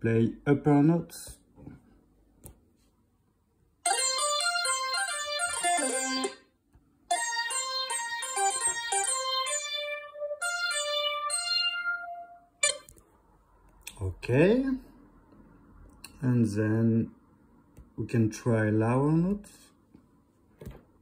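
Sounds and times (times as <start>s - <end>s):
synthesizer playing high notes: 7.1s - 12.9s.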